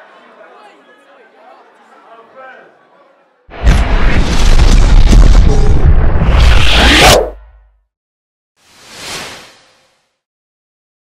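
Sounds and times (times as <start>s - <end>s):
loud boom-like hit: 3.5s - 7.6s.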